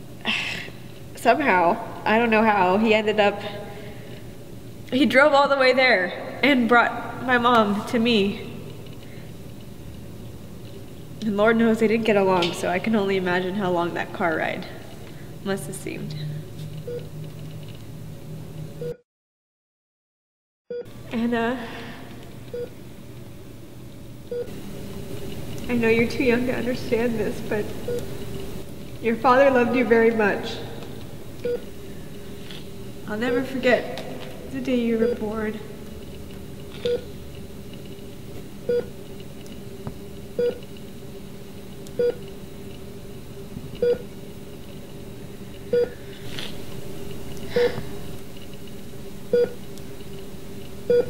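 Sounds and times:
steady low hum: 0:00.0 - 0:19.0, 0:20.9 - 0:51.0
patient monitor beeping: 0:16.1 - 0:17.5, 0:18.8 - 0:19.0, 0:22.5 - 0:22.8, 0:24.3 - 0:28.7, 0:30.2 - 0:33.8, 0:34.6 - 0:35.7, 0:36.7 - 0:37.2, 0:38.6 - 0:39.0, 0:40.3 - 0:40.7, 0:41.8 - 0:42.3, 0:43.8 - 0:44.1, 0:45.6 - 0:46.1, 0:49.3 - 0:49.8.

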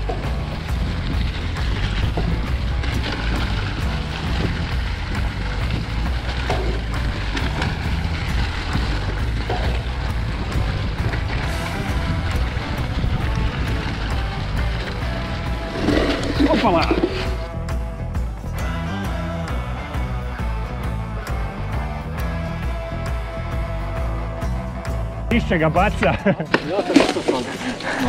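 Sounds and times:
bike clicking and rattling: 0:00.0 - 0:17.5, 0:26.0 - 0:28.0
mountain bike tyre noise: 0:00.0 - 0:28.0
music: 0:00.0 - 0:28.0.

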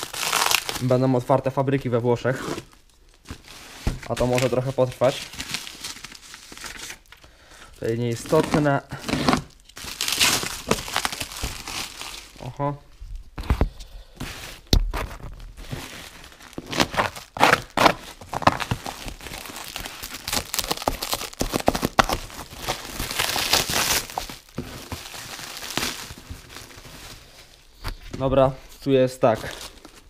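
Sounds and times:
plastic bag crackling and tearing: 0:00.0 - 0:01.2, 0:02.2 - 0:07.2, 0:07.8 - 0:12.7, 0:14.5 - 0:27.8.

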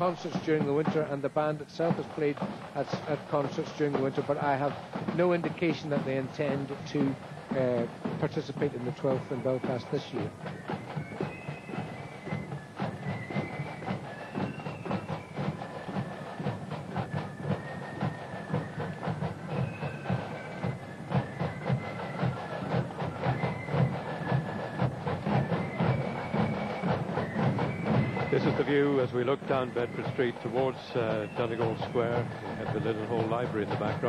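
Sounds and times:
flutes playing a melody: 0:00.0 - 0:34.0
side drums and bass drum: 0:00.0 - 0:34.0.

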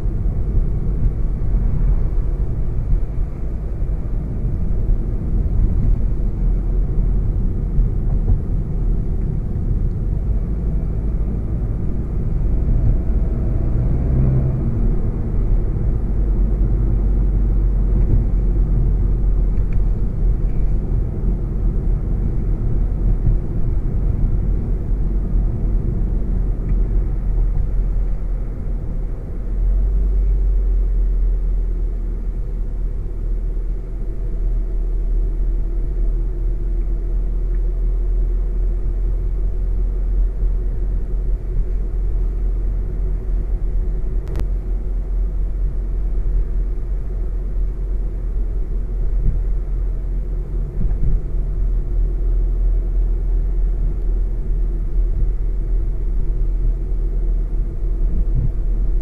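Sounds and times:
car engine and tyres rumbling: 0:00.0 - 0:59.0.

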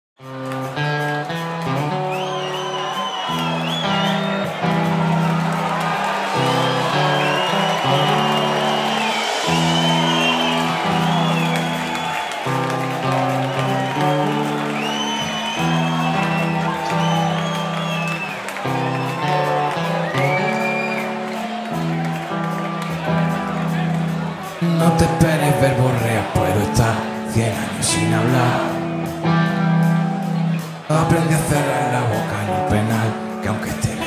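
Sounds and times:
electric guitar bending notes: 0:00.2 - 0:34.0
rock band playing: 0:00.2 - 0:34.0.

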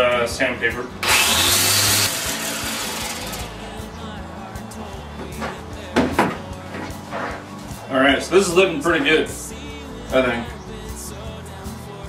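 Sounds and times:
sandpaper rasping on spinning wood: 0:01.0 - 0:03.5
low lathe hum: 0:01.0 - 0:03.9.

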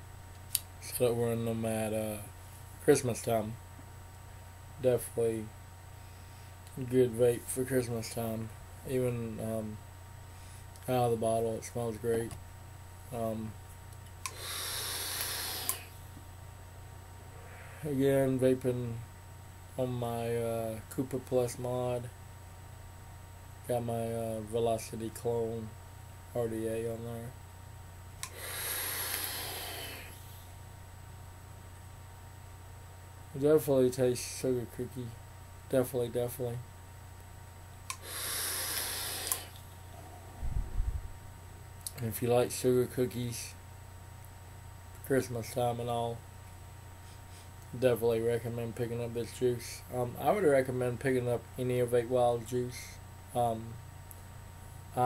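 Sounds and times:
vape hiss and coil sizzling: 0:14.2 - 0:16.0, 0:28.2 - 0:30.4, 0:37.9 - 0:40.2
breath puffs on microphone: 0:14.3 - 0:16.0, 0:17.1 - 0:18.0, 0:28.3 - 0:30.3, 0:38.0 - 0:39.6.

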